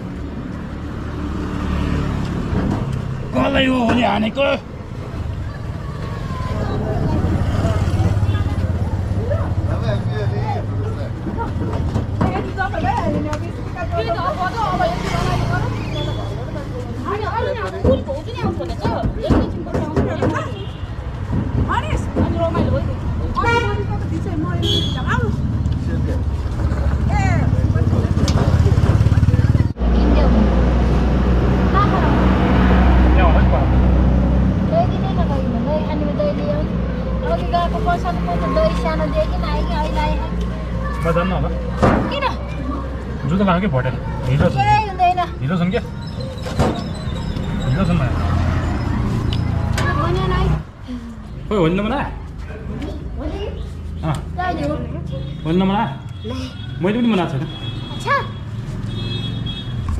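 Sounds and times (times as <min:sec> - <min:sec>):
people's voices: 0:00.0 - 0:58.9.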